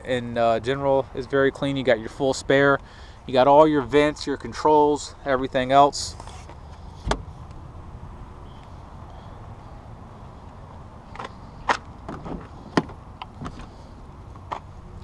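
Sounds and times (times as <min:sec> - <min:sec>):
footsteps on asphalt: 0:08.5 - 0:15.0.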